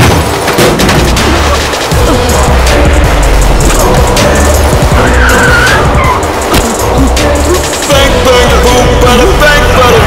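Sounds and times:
dramatic film score music: 0.0s - 10.0s
car tyres screeching: 1.3s - 7.9s.

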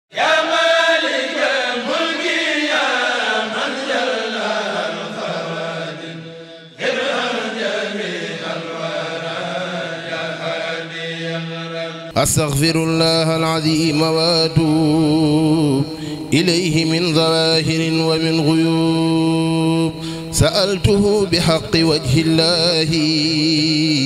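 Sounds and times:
vocal chanting: 0.1s - 24.0s.

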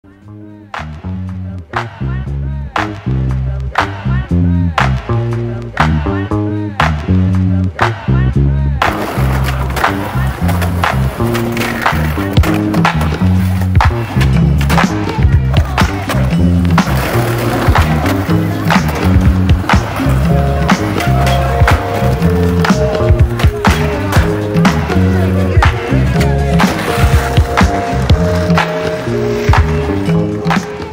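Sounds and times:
music with heavy bass: 0.1s - 30.9s
skateboard wheels rolling: 8.8s - 30.9s.

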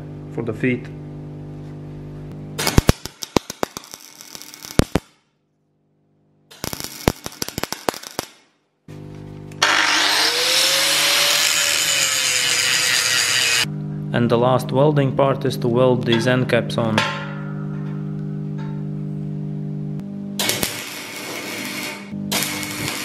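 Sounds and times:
welder arc crackling: 2.6s - 5.2s, 6.5s - 8.5s, 9.6s - 13.7s, 20.4s - 23.0s.

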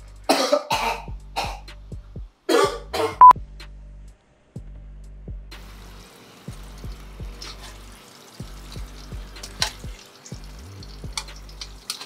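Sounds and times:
background music with beat: 0.0s - 11.8s
man coughing: 0.3s - 1.6s, 2.5s - 3.2s.

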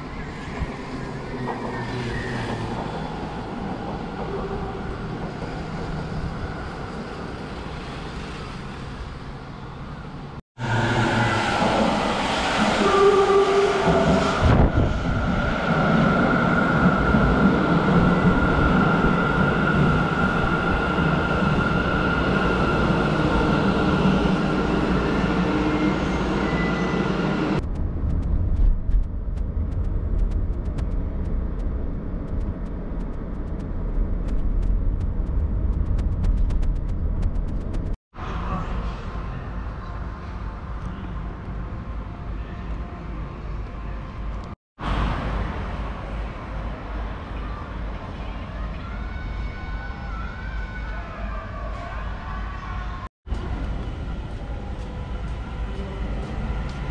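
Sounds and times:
rumble of running train: 0.0s - 56.9s.

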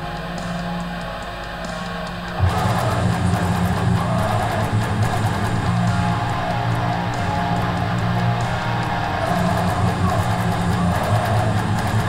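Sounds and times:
distorted electric guitar riff: 0.0s - 12.0s.

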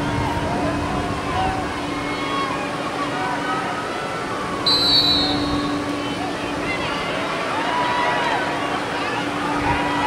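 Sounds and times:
outdoor field noise: 0.0s - 10.0s
referee whistle blast: 4.6s - 5.8s.

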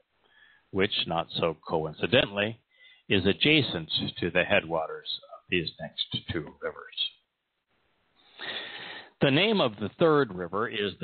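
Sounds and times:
man breathing in: 0.2s - 0.7s, 2.7s - 3.1s, 8.2s - 9.2s.

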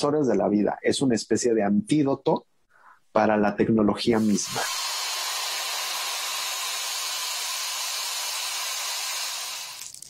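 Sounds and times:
tablet fizzing in liquid: 4.2s - 10.0s.

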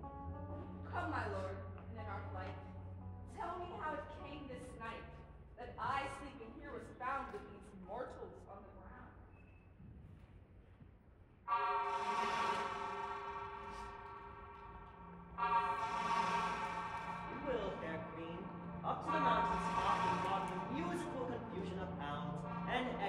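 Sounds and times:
hunting horn blasts: 11.5s - 23.0s.

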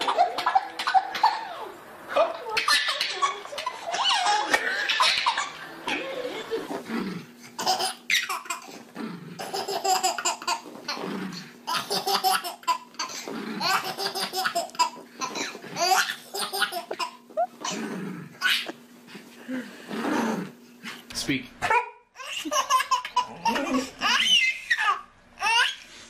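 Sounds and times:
babies laughing: 0.0s - 1.7s, 2.4s - 6.9s, 7.6s - 8.8s, 9.4s - 11.0s, 11.7s - 17.8s, 18.4s - 18.8s, 22.2s - 25.8s.

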